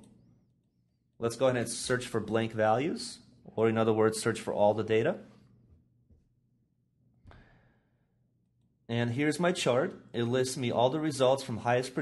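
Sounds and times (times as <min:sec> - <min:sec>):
man speaking: 0:01.2 - 0:05.3.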